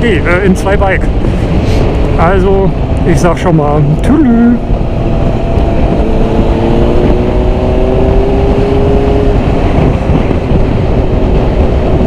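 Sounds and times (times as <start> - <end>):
heavy wind noise: 0.0 - 12.0
motorcycle engine cruising: 0.0 - 12.0.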